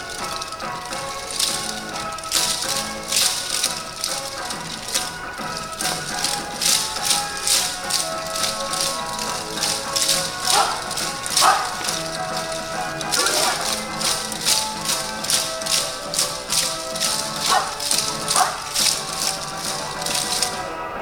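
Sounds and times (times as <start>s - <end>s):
wooden hand clappers clacking: 0.0s - 20.8s.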